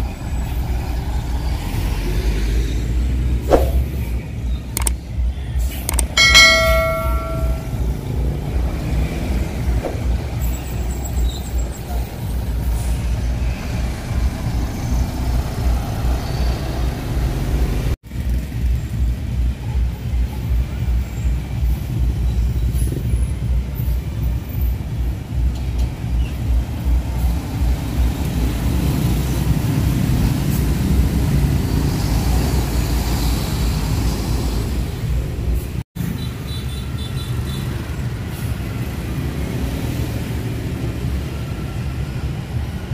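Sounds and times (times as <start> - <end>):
motorbikes passing: 0.0 - 4.6, 6.2 - 20.0, 26.5 - 42.9
coach bus diesel engines rumbling: 0.0 - 42.9
short bell-like ding: 6.2 - 7.9.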